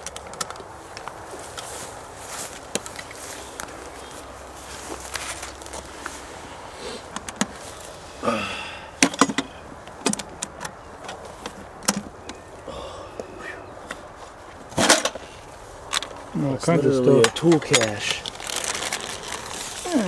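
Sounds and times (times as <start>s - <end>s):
metal clicks and knocks: 9.0s - 12.4s
metal latch and lid clack: 14.8s - 15.2s.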